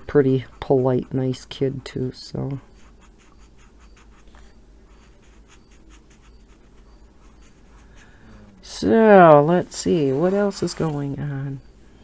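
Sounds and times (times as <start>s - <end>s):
marker scratching on paper: 0.0s - 8.6s, 9.9s - 11.1s.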